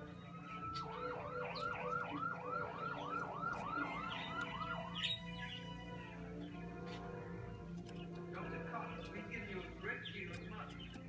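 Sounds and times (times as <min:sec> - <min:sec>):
siren wailing: 0:00.0 - 0:06.2
siren yelping: 0:00.1 - 0:06.1.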